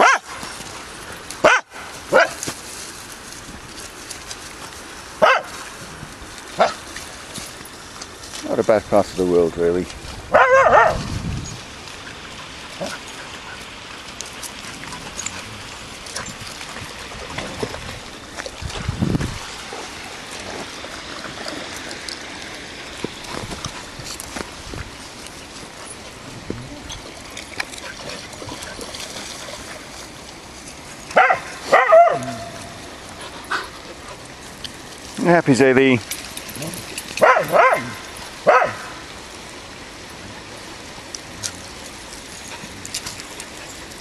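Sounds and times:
dog barking: 0:00.0 - 0:00.3, 0:01.4 - 0:02.4, 0:05.2 - 0:05.5, 0:10.3 - 0:11.0, 0:31.2 - 0:32.5, 0:37.2 - 0:38.9
outdoor hiss: 0:11.1 - 0:28.2, 0:29.4 - 0:44.0.

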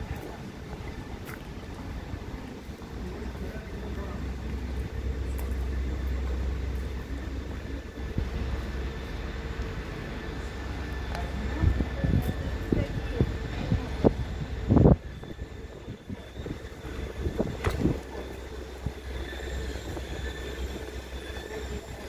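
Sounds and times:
city street ambience: 0:00.0 - 0:22.0.

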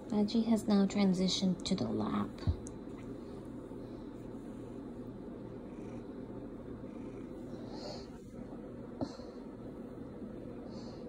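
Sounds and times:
cat purring: 0:00.3 - 0:11.0.

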